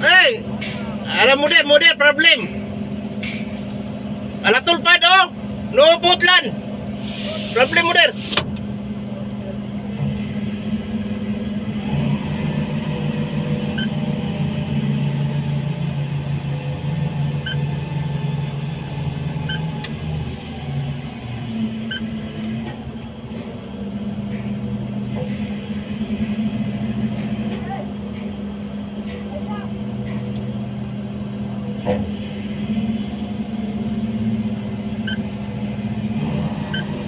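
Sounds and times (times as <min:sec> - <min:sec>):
rotating drum humming: 0:00.0 - 0:37.0.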